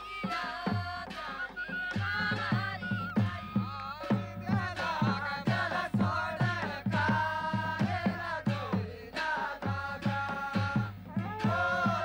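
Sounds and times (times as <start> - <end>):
drums beating steady rhythm: 0.0 - 12.0.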